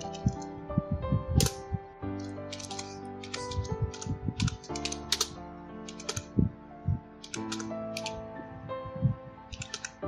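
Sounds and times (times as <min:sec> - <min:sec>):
computer keyboard keys clicking: 0:00.0 - 0:00.5, 0:02.2 - 0:06.3, 0:07.2 - 0:08.2, 0:09.5 - 0:10.0.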